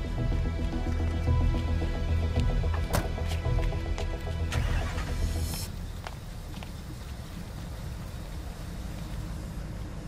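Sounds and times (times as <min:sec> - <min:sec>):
drama music with deep bass: 0:00.0 - 0:05.8.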